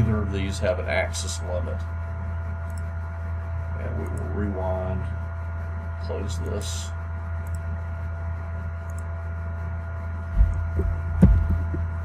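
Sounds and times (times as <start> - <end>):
low electrical hum: 0.0 - 12.0
sharp click: 2.6 - 2.9
low thumps: 10.3 - 12.0.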